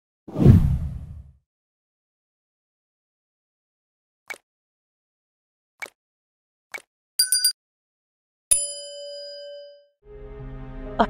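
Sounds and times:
deep whoosh sound effect: 0.3 - 1.3.

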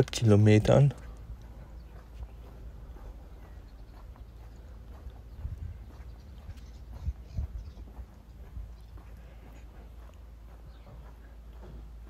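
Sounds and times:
footsteps on paved street: 0.0 - 12.0
steady low rumble: 0.0 - 12.0.

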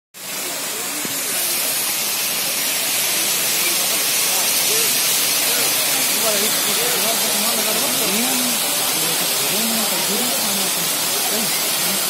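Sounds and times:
faint voices: 0.2 - 12.0
waterfall pouring over rocks: 0.2 - 12.0.

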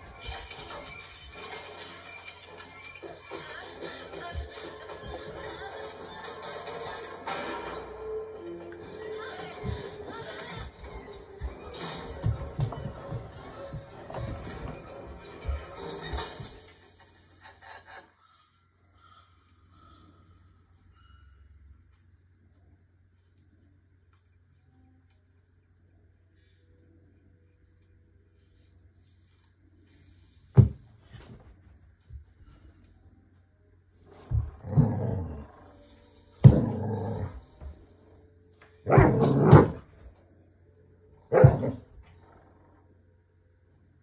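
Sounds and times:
film music from television: 0.0 - 21.6, 33.3 - 43.6
dog growling: 34.3 - 37.5, 38.8 - 39.9, 41.3 - 42.9
dog barking: 41.3 - 41.9.

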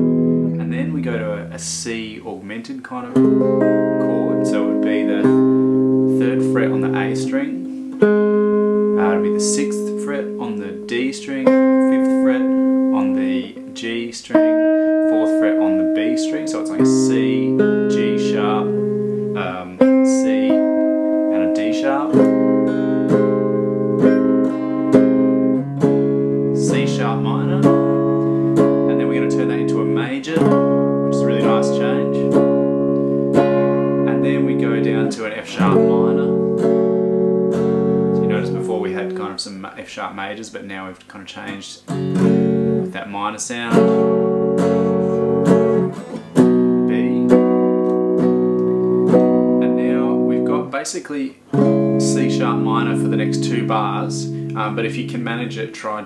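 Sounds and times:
electric guitar strumming chords: 0.0 - 2.2, 2.9 - 39.4, 41.5 - 56.0.

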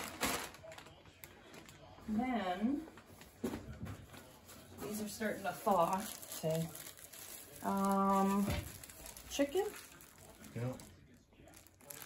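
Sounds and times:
plastic bag crinkling: 0.0 - 2.0, 4.2 - 12.0.

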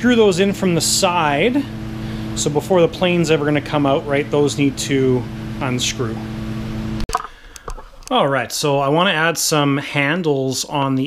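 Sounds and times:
machine hum: 0.0 - 8.8.

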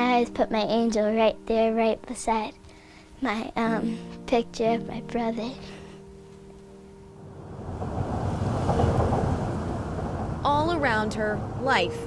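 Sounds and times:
traffic rumble on bridge overhead: 7.1 - 12.0.

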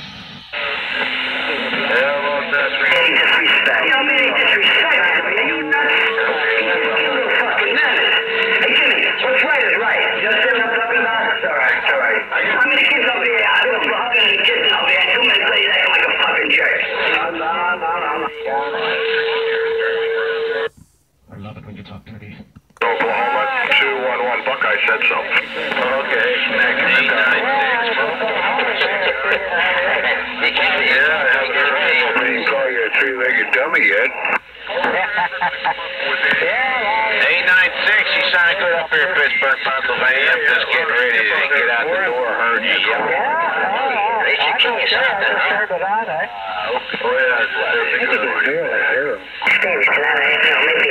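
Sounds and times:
distant radio voices: 0.0 - 50.9.

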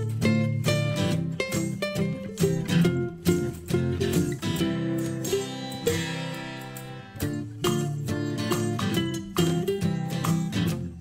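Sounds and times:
plucked acoustic guitar: 0.0 - 11.0.

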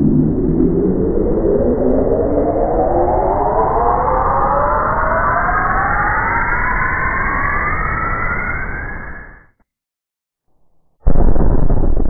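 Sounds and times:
low rumble: 11.0 - 12.0.

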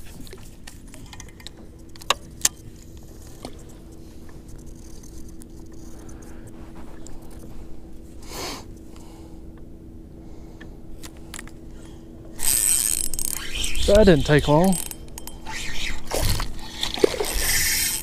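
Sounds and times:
faint steady hum: 0.0 - 18.0
fishing reel gears whirring: 3.2 - 6.4, 11.3 - 18.0.

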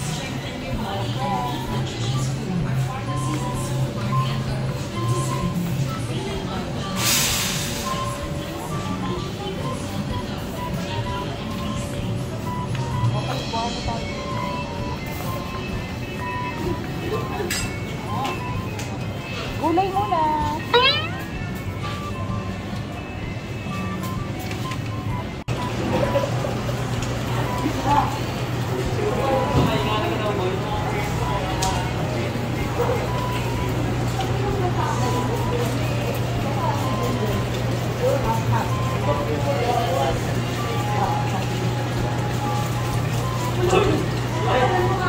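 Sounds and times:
faint indistinct voices: 0.0 - 45.0.

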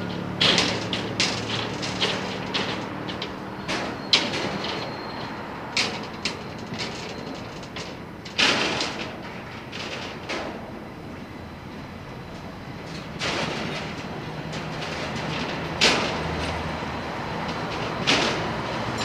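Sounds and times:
tram rolling rumble: 0.0 - 19.0.

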